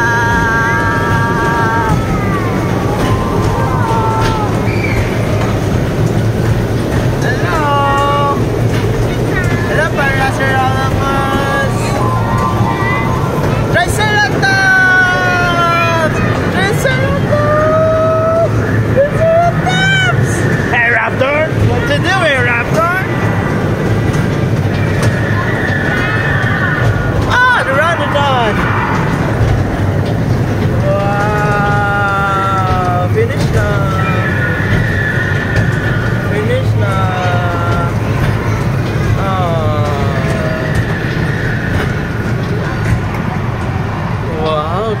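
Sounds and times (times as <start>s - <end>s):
steady low rumble: 0.0s - 45.0s.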